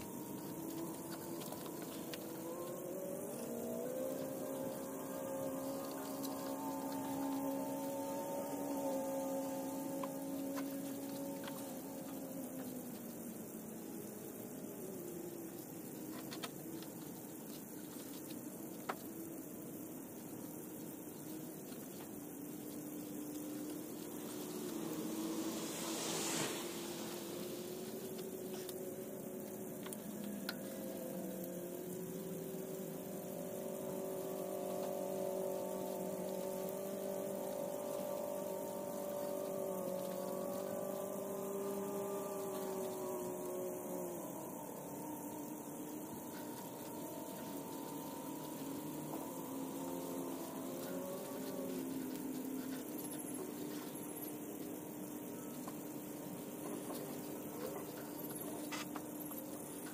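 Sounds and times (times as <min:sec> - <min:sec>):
motor drone: 0:00.0 - 0:59.9.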